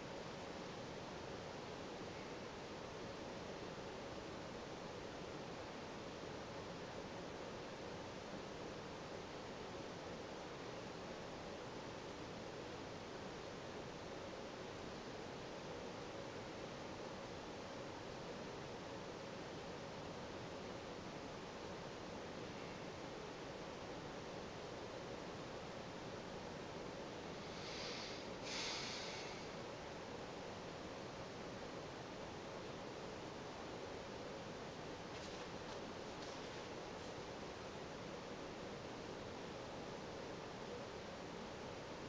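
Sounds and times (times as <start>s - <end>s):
microphone hiss: 0.0s - 42.0s
soft rustle: 35.0s - 37.8s.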